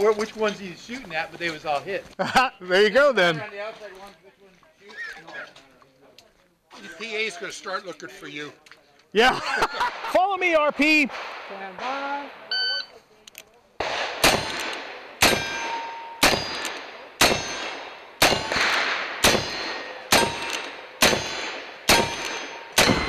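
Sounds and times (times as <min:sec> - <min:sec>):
steel plate clanging: 0:15.2 - 0:18.6, 0:19.3 - 0:23.0.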